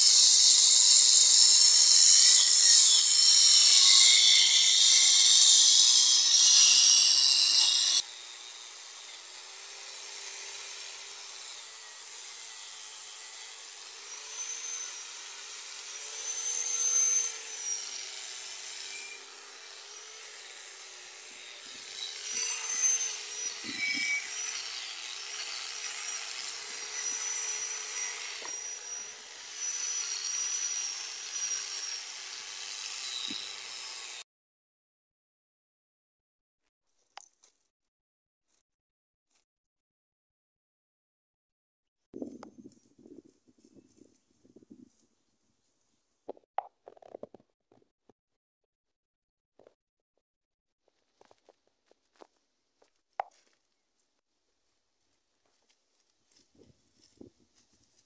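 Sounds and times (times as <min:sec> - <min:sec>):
angle grinder grinding steel: 0:00.0 - 0:34.2
grinder motor whine: 0:00.1 - 0:34.2.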